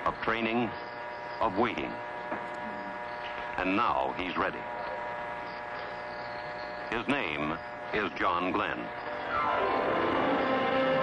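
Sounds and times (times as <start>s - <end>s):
electrical hum: 0.0s - 11.0s.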